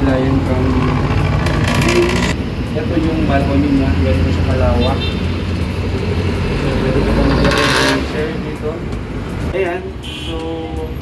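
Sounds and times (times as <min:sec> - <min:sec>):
loud vehicle passing: 0:00.0 - 0:09.6
rumble of passing cars: 0:00.0 - 0:11.0.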